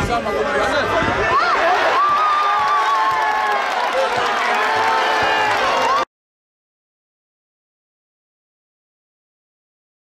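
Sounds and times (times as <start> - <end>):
crowd cheering and shouting: 0.1 - 6.1.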